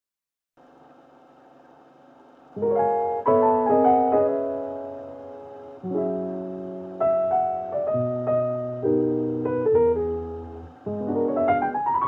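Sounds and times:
faint drone of held tones: 0:00.6 - 0:12.0.

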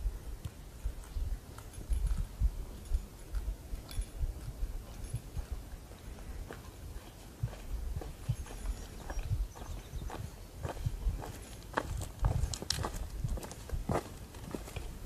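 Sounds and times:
boots walking on dirt trail: 0:00.8 - 0:15.0.

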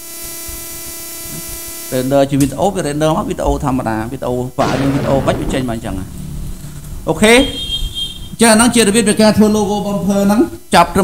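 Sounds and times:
buzzing hum: 0:00.0 - 0:10.1
steady electrical hiss: 0:00.0 - 0:11.0.

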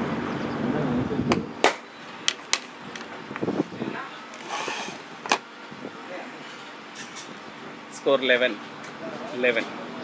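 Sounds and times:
faint background murmur: 0:03.5 - 0:10.0.

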